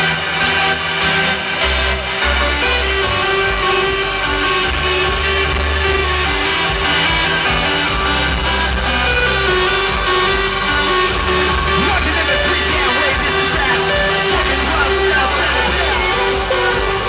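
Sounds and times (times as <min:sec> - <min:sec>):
hardstyle electronic dance music: 0:00.0 - 0:17.0.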